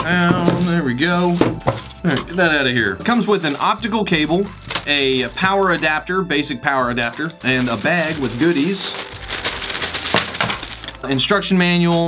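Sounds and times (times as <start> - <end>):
plastic bag crinkling: 3.0 - 6.2, 6.9 - 11.3.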